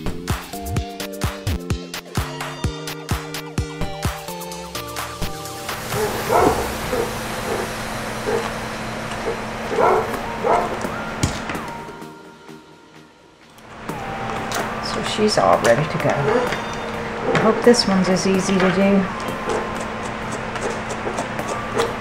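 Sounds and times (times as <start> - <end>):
dance music: 0.0 - 8.4
dog barking: 5.9 - 8.6, 9.2 - 10.9.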